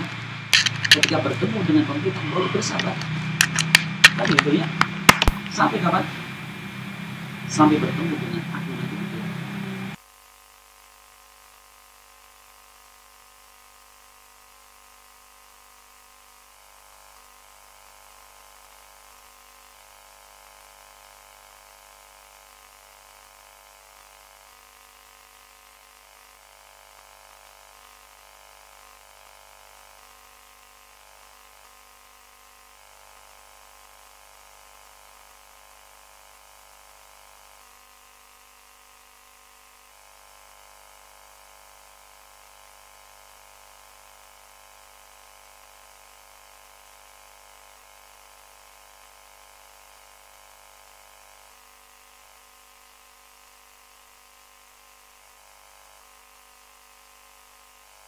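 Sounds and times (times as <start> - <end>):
steady hiss: 0.0 - 10.0
electrical hum with fixed tones: 0.0 - 13.0.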